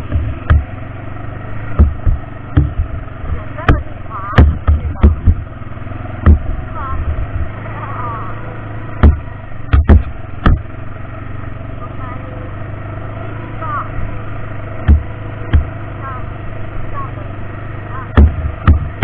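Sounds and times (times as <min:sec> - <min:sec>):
loud sharp knocks: 0:00.0 - 0:00.8, 0:01.7 - 0:03.0, 0:03.6 - 0:05.5, 0:06.2 - 0:07.5, 0:09.0 - 0:10.7, 0:14.8 - 0:15.8, 0:18.1 - 0:19.0
atv engine running: 0:00.0 - 0:19.0.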